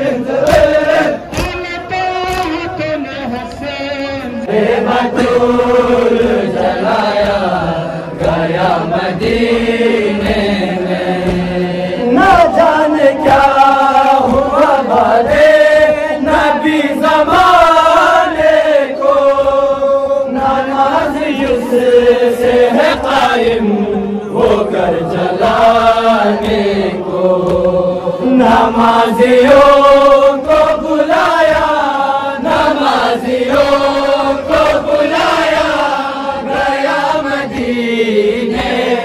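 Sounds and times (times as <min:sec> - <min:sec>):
young men chanting in unison: 0:00.0 - 0:39.0.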